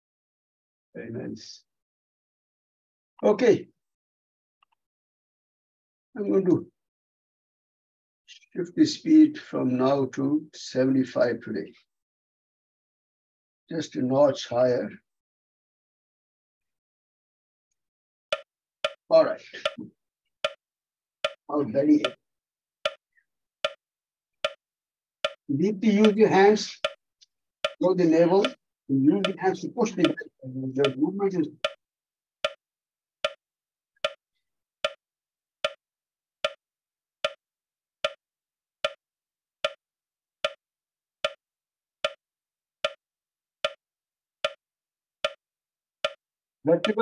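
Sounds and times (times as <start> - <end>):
metronome clicking: 26.0 - 26.2, 30.0 - 31.0.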